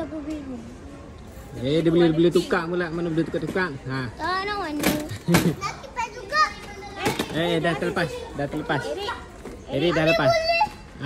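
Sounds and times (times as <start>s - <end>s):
children calling and chattering: 0.0s - 11.0s.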